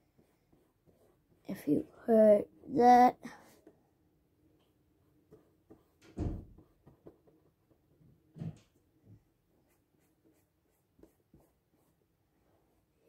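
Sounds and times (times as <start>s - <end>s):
colouring strokes on paper: 0.0s - 2.6s, 3.2s - 3.8s, 4.7s - 8.0s, 9.4s - 13.0s.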